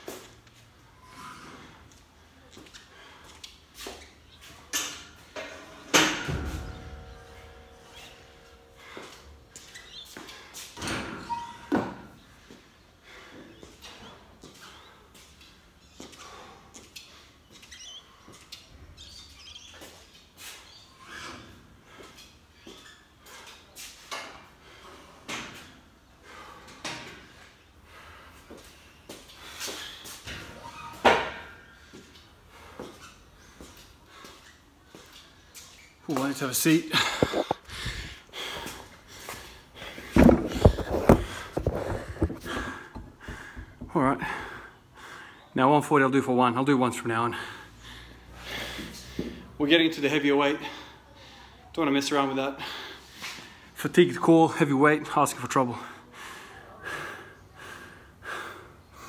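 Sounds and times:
knocks and shuffling: 36.1s - 44.1s.

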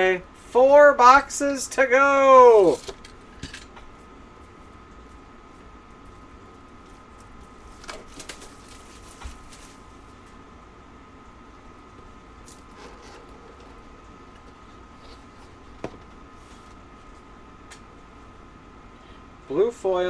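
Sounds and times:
faint constant whine: 0.0s - 20.0s
steady background hum: 0.0s - 20.0s
trading cards rustling and clicking: 7.1s - 9.8s.

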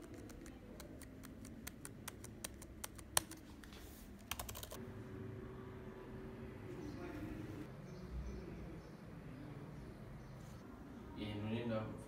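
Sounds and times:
laptop keys clicking: 0.0s - 3.4s, 4.2s - 4.8s.

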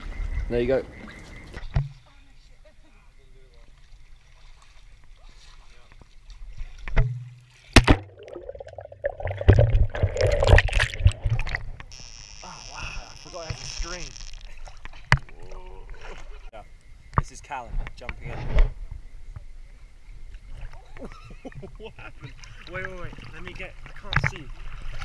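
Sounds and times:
water splashing and sloshing: 0.0s - 12.0s, 13.4s - 16.5s, 20.0s - 25.0s.

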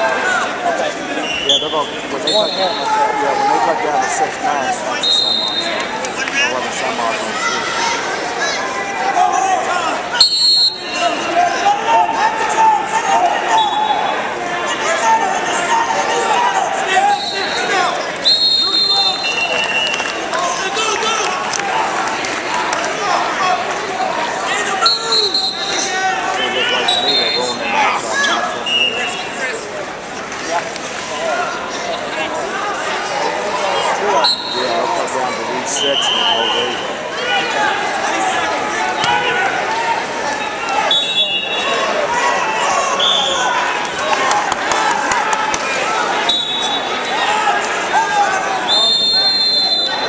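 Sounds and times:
crowd shouting: 0.0s - 29.7s, 30.9s - 50.0s
referee's whistle blast: 5.0s - 5.8s, 10.2s - 11.1s, 17.1s - 20.0s, 24.8s - 25.9s, 35.8s - 36.9s, 40.8s - 41.7s, 46.3s - 47.2s, 48.7s - 50.0s.

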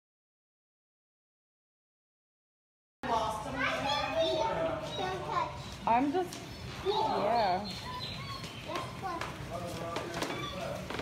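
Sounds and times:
children chattering and calling out: 3.0s - 11.0s.

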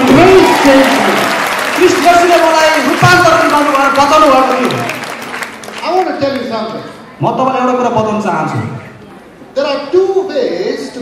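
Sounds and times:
man speaking over loudspeaker: 0.0s - 5.0s, 5.8s - 11.0s
audience applauding: 0.0s - 6.8s.

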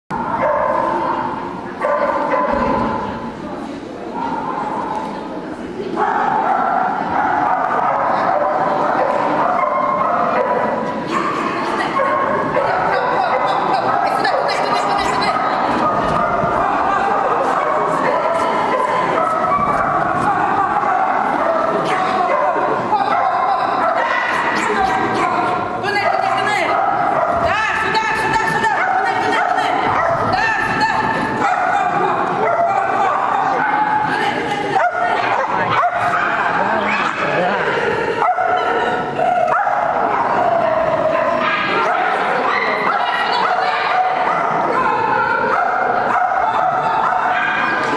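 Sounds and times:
people's voices: 0.1s - 47.9s.

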